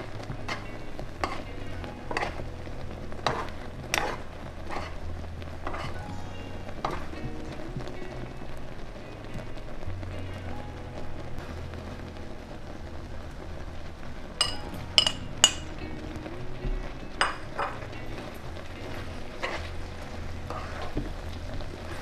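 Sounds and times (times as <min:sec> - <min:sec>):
syrup bubbling and sizzling in a pan: 0:00.0 - 0:22.0
spoon scraping and clinking: 0:02.1 - 0:02.4, 0:03.2 - 0:05.0, 0:05.6 - 0:06.0, 0:14.4 - 0:15.7
scoop clinking on a pan: 0:14.4 - 0:15.7.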